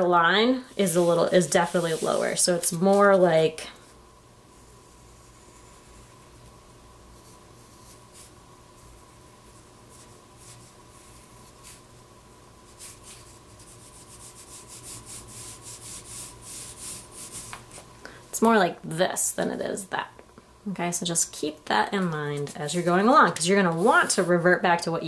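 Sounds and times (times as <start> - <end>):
pencil drawing on paper: 0.8 - 3.2, 4.6 - 6.2, 12.7 - 17.5.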